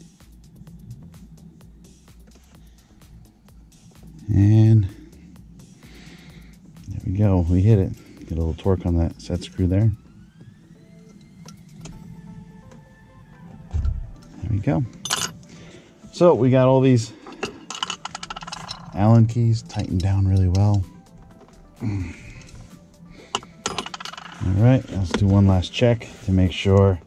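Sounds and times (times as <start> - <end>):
quiet background music: 0.0 - 27.0
faint tone rising in pitch: 9.4 - 14.4
small metal clinks: 15.0 - 15.5, 17.2 - 19.0, 23.3 - 24.5.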